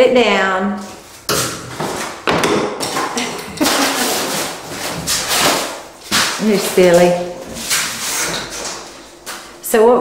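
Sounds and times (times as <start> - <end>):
wire panel rattling and thudding: 1.3 - 9.6.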